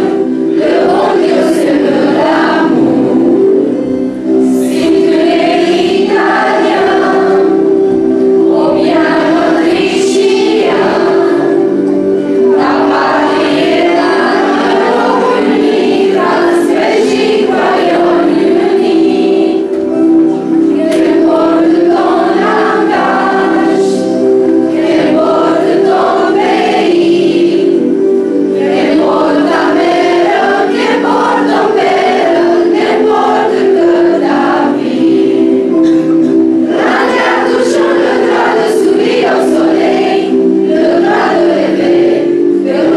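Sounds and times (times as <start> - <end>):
choir singing sustained notes: 0.0 - 42.9.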